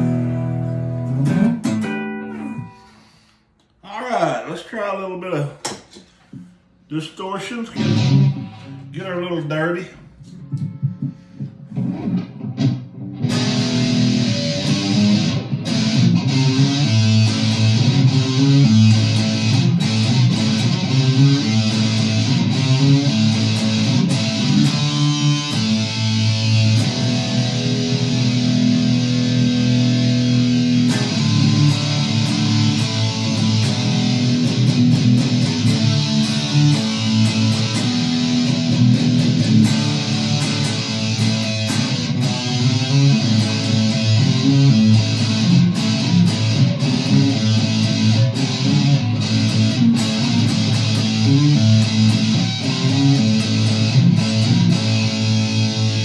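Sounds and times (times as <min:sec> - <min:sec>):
distorted electric guitar riffs: 0:00.0 - 0:03.4, 0:07.2 - 0:56.0.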